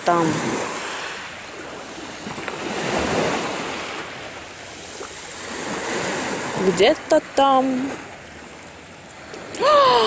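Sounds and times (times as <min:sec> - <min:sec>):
wind blowing: 0:00.0 - 0:10.0.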